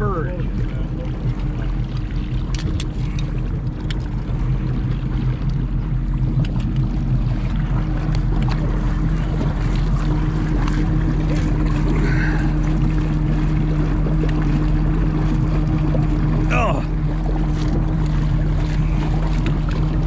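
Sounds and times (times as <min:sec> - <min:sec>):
boat engine running: 0:00.0 - 0:20.0
water sloshing against hull: 0:00.0 - 0:20.0.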